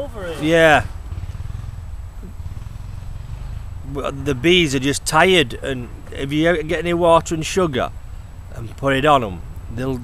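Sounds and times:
motorbike engine running: 0:00.0 - 0:10.0.

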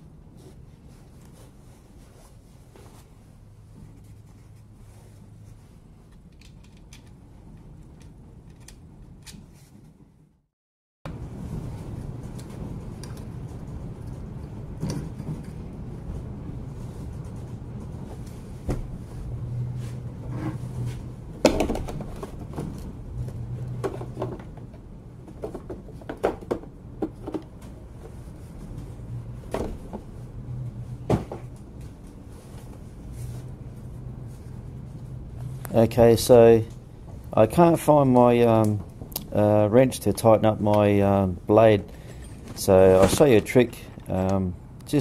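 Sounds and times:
steady low hum: 0:11.1 - 0:45.0.

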